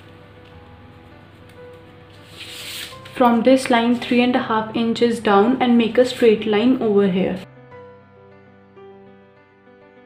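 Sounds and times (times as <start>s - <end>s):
quiet background music: 0.0s - 10.0s
object sliding over paper: 2.1s - 3.2s.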